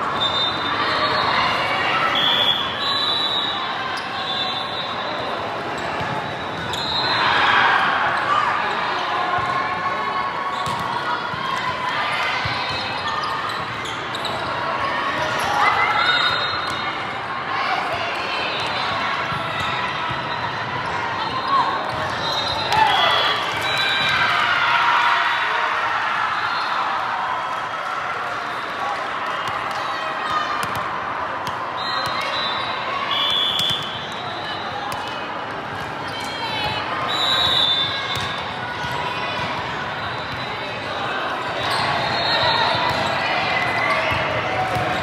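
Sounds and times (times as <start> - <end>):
hubbub of many voices: 0.0 - 45.0
players shouting: 17.4 - 45.0.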